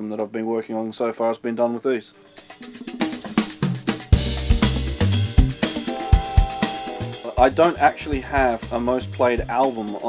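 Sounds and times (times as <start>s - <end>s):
band music with drum kit: 2.4s - 10.0s.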